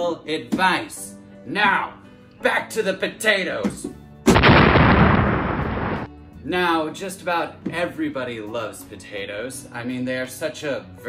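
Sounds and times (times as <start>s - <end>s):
explosion blast: 4.3s - 6.1s.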